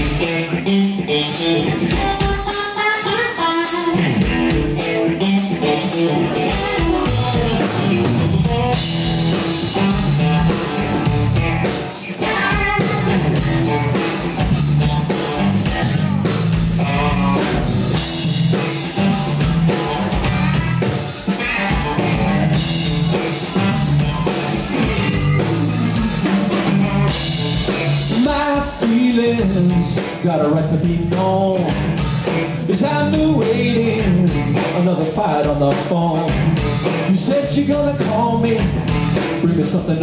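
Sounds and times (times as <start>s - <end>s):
drum kit with cymbals: 0.0s - 40.0s
electric bass: 0.0s - 40.0s
electric guitar: 0.0s - 40.0s.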